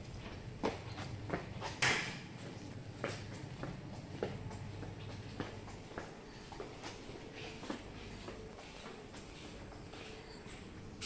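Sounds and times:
steady low hum: 0.0s - 11.0s
footsteps on hard floor: 2.4s - 10.2s.

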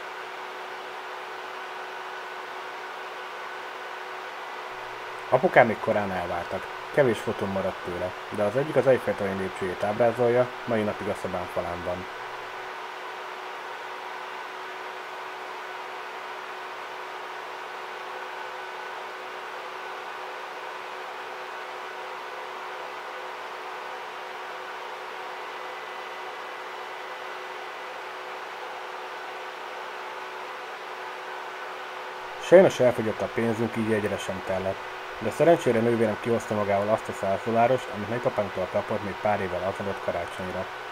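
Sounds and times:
projector cooling fan hum: 0.0s - 40.9s.

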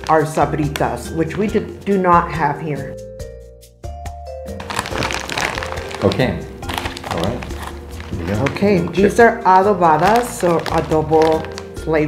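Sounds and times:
plastic snack bag crackling: 0.0s - 0.8s, 4.6s - 9.2s, 9.8s - 12.0s
background music with held tones: 0.0s - 12.0s.

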